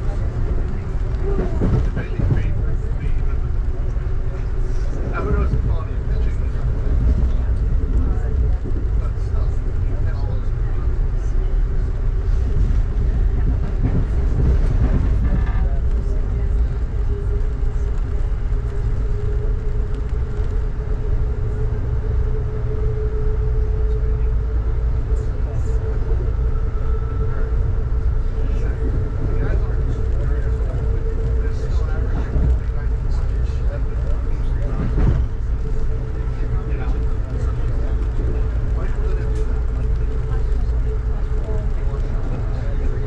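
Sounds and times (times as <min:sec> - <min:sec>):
train rumbling on rails: 0:00.0 - 0:43.0.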